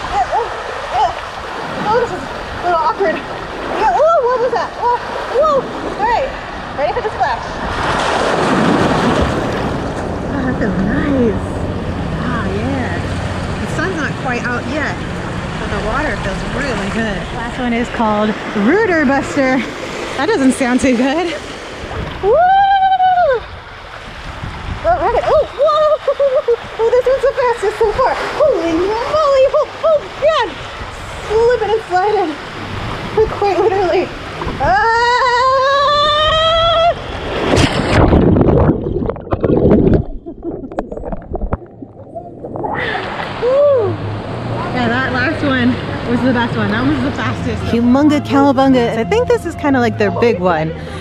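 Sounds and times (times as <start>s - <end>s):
voices: 0.0s - 7.7s, 10.0s - 23.5s, 24.8s - 37.1s, 42.1s - 51.0s
water rushing down a slide: 15.6s - 47.1s
woman screaming: 22.2s - 23.5s, 34.6s - 37.0s
woman whooping: 22.2s - 23.5s, 24.8s - 26.6s, 34.6s - 37.0s, 43.4s - 44.1s.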